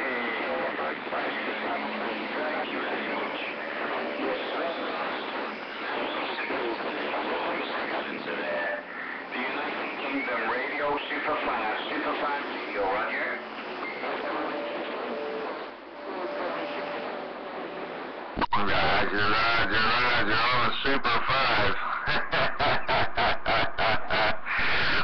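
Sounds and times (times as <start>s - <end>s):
distant radio voices: 0.0s - 25.0s
radio band noise: 0.0s - 25.0s
steady radio whistles: 0.0s - 25.0s.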